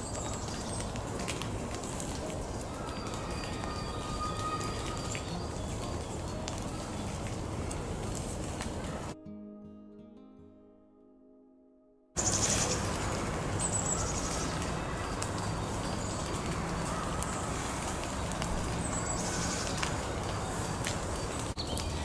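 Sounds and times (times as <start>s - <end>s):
bird trilling: 12.2s - 20.6s.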